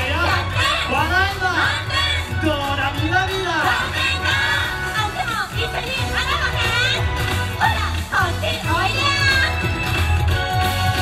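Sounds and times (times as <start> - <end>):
bass line: 0.0 - 11.0
dance music track: 0.0 - 11.0.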